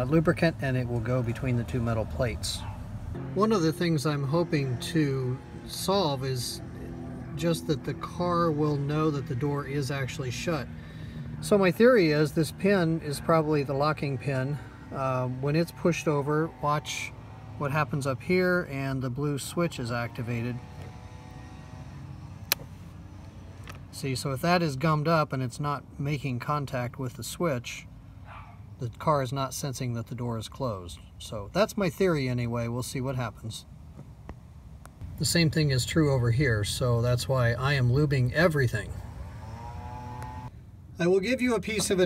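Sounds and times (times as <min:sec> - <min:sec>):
low steady rumble: 0:00.0 - 0:42.0.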